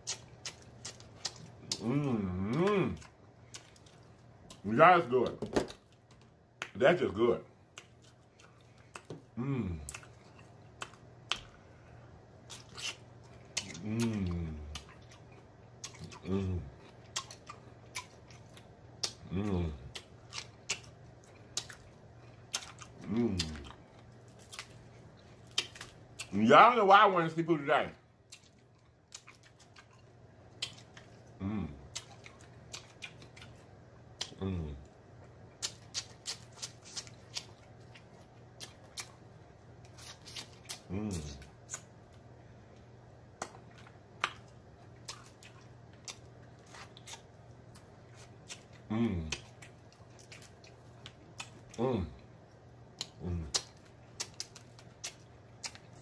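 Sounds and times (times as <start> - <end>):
wet lip smacks and mouth clicks: 0.0 - 1.9, 9.9 - 11.6, 12.5 - 15.2, 17.1 - 19.2, 19.9 - 23.8, 25.4 - 26.4, 28.3 - 31.3, 31.9 - 33.6, 34.2 - 34.4, 35.6 - 39.2, 39.9 - 40.9, 41.6 - 41.9, 43.4 - 51.8, 52.9 - 56.0
crackly biting of food: 0.0 - 4.6, 12.4 - 26.4, 28.3 - 34.5, 35.3 - 39.2, 39.8 - 42.2, 43.3 - 52.2, 52.9 - 56.0
person moaning mmm: 1.6 - 3.1, 9.3 - 10.0, 13.6 - 14.8, 16.2 - 16.7, 19.2 - 20.0, 23.0 - 23.7, 31.4 - 31.8, 34.4 - 34.8, 48.9 - 49.4, 51.8 - 52.2, 53.2 - 53.6.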